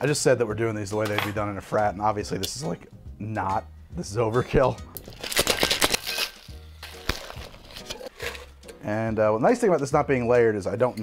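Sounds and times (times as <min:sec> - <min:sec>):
ice rattling in cocktail shaker: 0:05.1 - 0:08.5.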